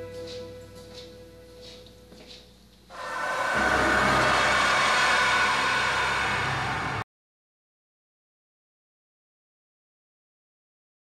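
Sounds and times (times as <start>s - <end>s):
loud horror rushing noise: 2.9s - 7.1s.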